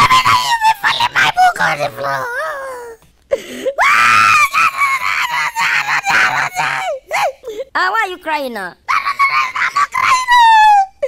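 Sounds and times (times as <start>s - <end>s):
cartoon boy crying wail: 0.0s - 3.0s, 3.7s - 7.5s, 8.9s - 11.0s.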